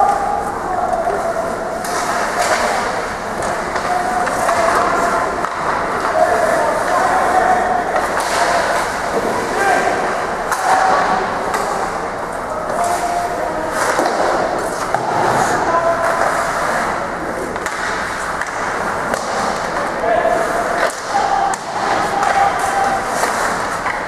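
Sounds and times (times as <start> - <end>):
players calling out: 0.0 - 24.0
hockey sticks and puck knocking: 1.8 - 12.0, 12.7 - 16.9, 17.5 - 20.0, 20.8 - 24.0
skates scraping ice: 12.7 - 24.0.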